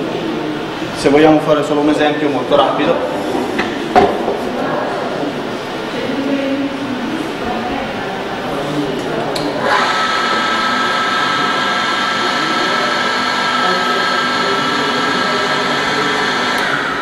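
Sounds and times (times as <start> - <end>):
drill motor high whine: 9.6 - 17.0.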